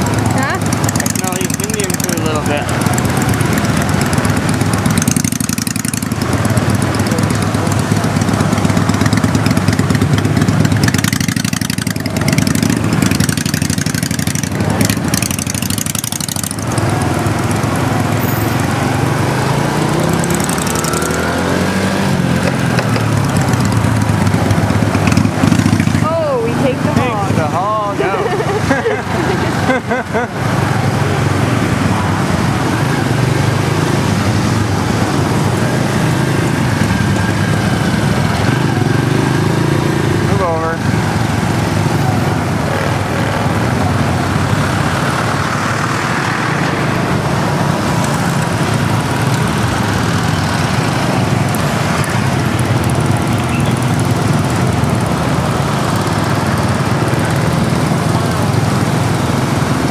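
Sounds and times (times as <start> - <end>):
motorbike engine running: 0.0 - 59.9
street traffic: 0.0 - 59.9.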